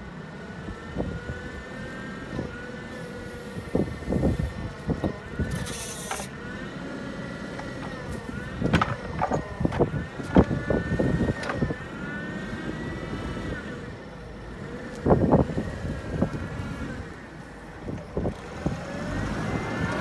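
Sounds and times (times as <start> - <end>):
forklift engine and hydraulic whine: 0.0 - 20.0
sharp clunks and knocks: 8.6 - 10.6.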